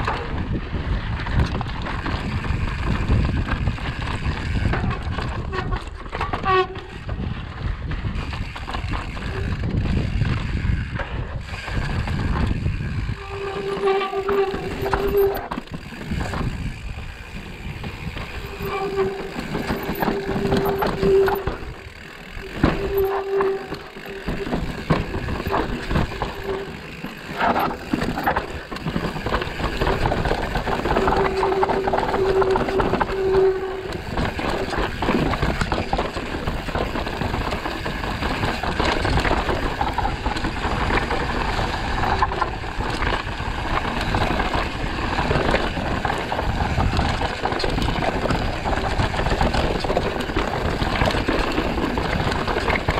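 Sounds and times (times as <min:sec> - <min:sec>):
bike knocking and rattling: 0:00.0 - 0:52.9
bike tyre noise: 0:00.0 - 0:52.9
wind rush on microphone: 0:00.0 - 0:52.9.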